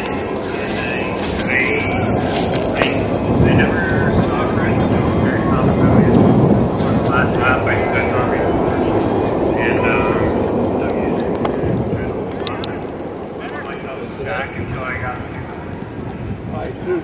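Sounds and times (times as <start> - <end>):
people talking faintly: 0.0 - 17.0
wind rumble on microphone: 0.0 - 17.0.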